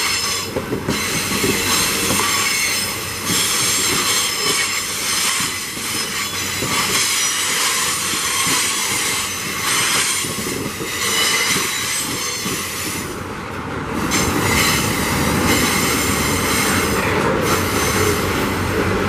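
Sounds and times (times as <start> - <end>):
high-pitched wheel squeal: 0.0 - 12.6
train wheels clattering on rails: 0.0 - 19.0.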